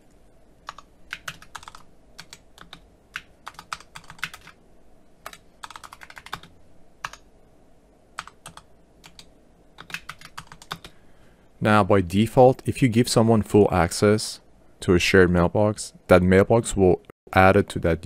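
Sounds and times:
computer keyboard typing: 0.6 - 4.6, 5.2 - 7.3, 8.2 - 11.0.

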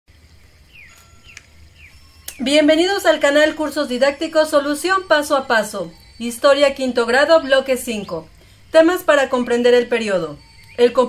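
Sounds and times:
faint bird chirps: 0.1 - 11.0
low steady hum: 0.1 - 11.0.

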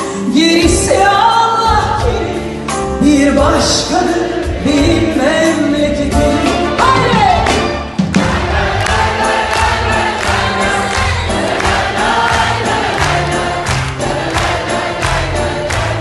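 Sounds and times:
orchestra with strings and drums: 0.0 - 16.0
crowd singing: 3.6 - 6.0, 8.2 - 16.0.

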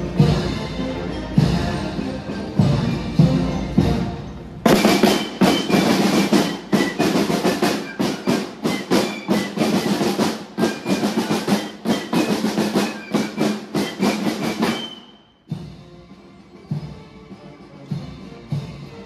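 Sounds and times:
marching snare drums: 1.4 - 19.0
high fife notes: 2.9 - 15.5.

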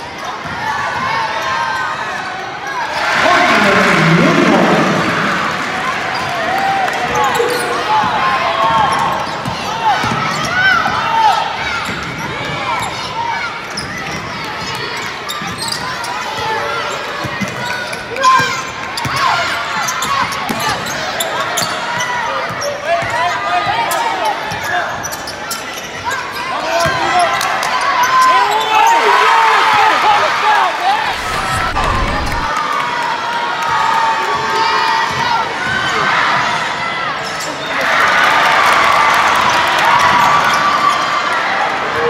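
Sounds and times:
crowd voices and shouts: 0.0 - 42.0.

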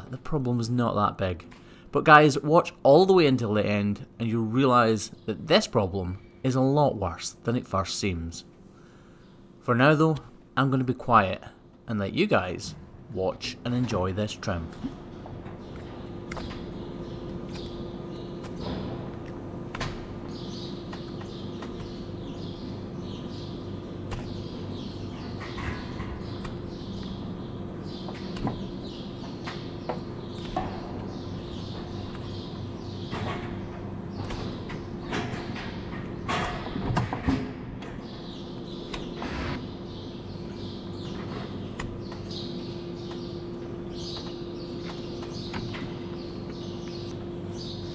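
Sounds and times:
steady low hum: 0.0 - 47.9.

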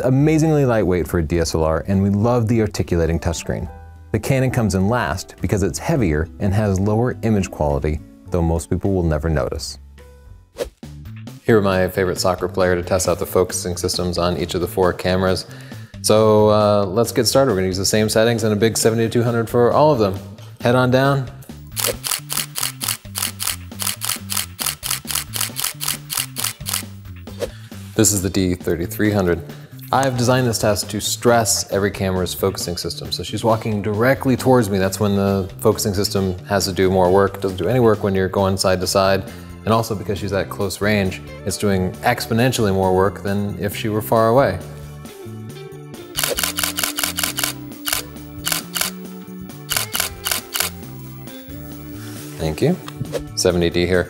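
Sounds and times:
background music with bass: 0.0 - 54.0
camera shutter burst: 21.7 - 27.0, 46.2 - 49.0, 49.7 - 50.9.

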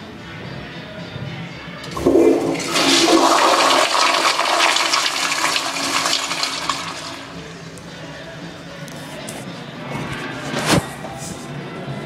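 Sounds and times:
toilet water rushing: 1.9 - 7.6.

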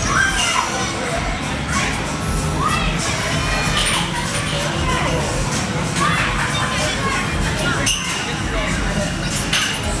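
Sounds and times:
children shouting and playing: 0.0 - 8.6.

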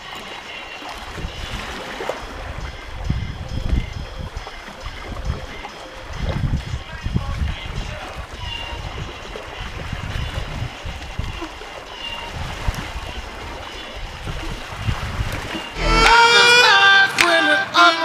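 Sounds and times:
loud song with singing: 0.0 - 9.9, 15.8 - 18.0
water splashing along hull: 0.0 - 18.0
wind buffeting microphone: 1.0 - 16.7.

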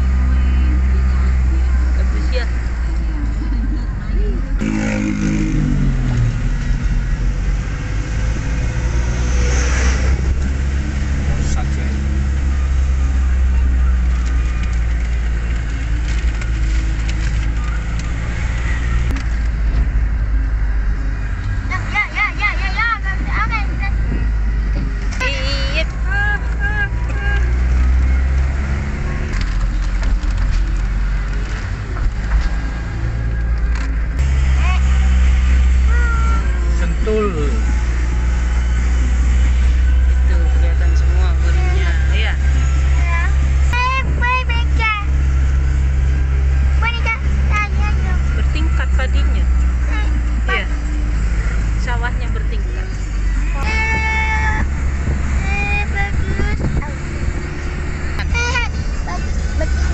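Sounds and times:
people talking indistinctly: 0.0 - 4.7, 40.0 - 45.3, 46.6 - 59.9
vehicle engine drone: 0.0 - 59.9.

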